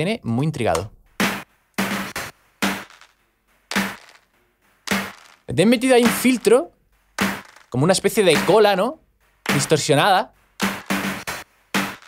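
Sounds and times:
snare drum hits: 1.2s - 3.1s, 3.7s - 4.2s, 4.9s - 5.4s, 6.0s - 6.6s, 7.2s - 8.8s, 9.4s - 9.9s, 10.6s - 12.0s.

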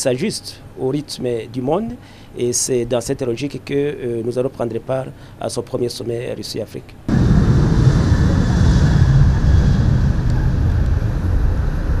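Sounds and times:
jet engines at takeoff power: 7.1s - 12.0s.

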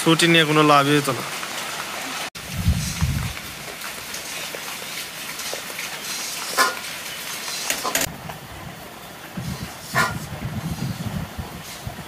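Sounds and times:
rain pattering on ground and roofs: 0.0s - 9.8s.

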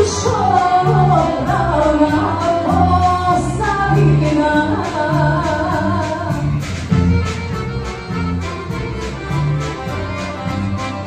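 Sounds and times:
woman singing: 0.0s - 6.6s
accordions: 0.0s - 11.0s
drums: 0.0s - 11.0s
electric bass: 0.0s - 11.0s.

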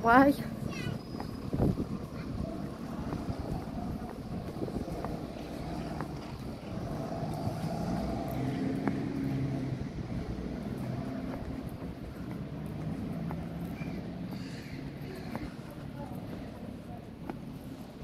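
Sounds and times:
bus engines droning: 0.0s - 18.0s.

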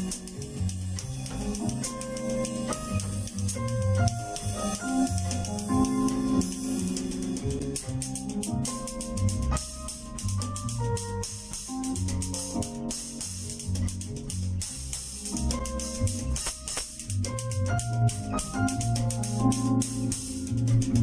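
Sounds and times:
smooth jazz backing track: 0.0s - 21.0s.

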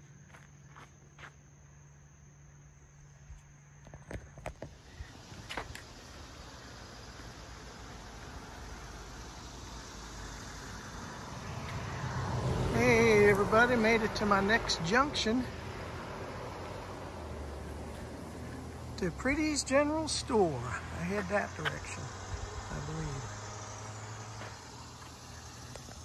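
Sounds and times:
footsteps on dirt path: 0.0s - 1.4s, 3.3s - 6.1s, 17.2s - 19.0s, 23.9s - 26.0s
car approaching: 0.0s - 26.0s
faint insect drone: 0.0s - 26.0s.

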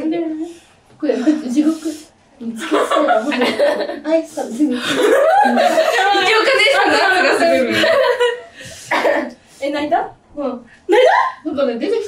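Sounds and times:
young women laughing: 2.6s - 9.3s, 10.9s - 11.4s.

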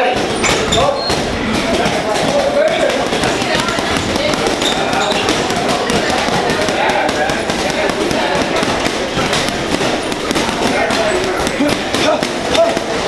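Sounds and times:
gloves punching heavy bag: 0.0s - 13.0s
gym chatter: 0.0s - 13.0s.

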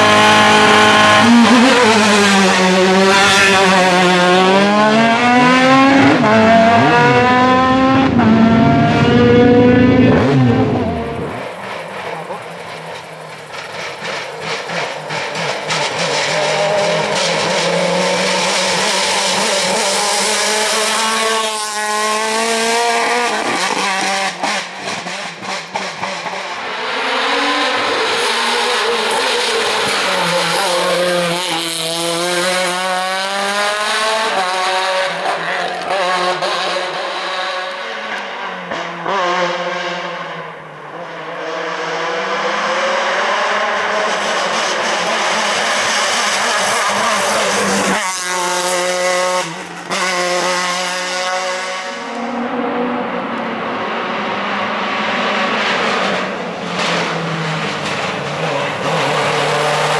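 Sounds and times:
race car at full throttle: 0.0s - 59.9s.

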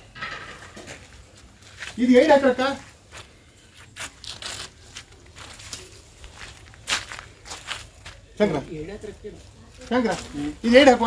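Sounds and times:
rustling and crackling: 0.0s - 8.3s.

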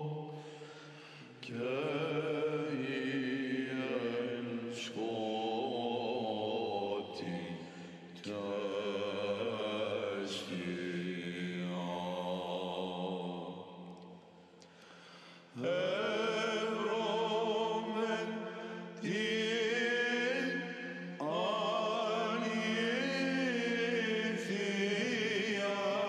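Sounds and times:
male choir chanting: 1.4s - 13.6s, 15.6s - 26.0s.

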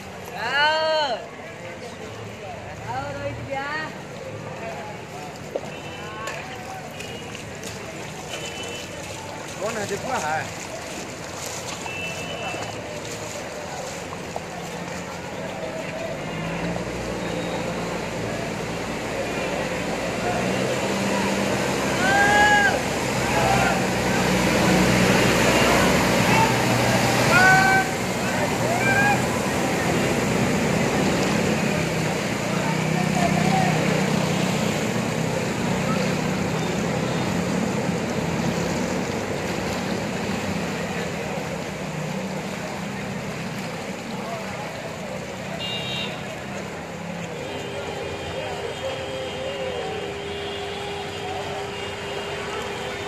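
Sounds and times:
people's voices: 0.0s - 53.0s
vehicle driving through water: 0.0s - 53.0s
diesel engine hum: 8.9s - 53.0s.

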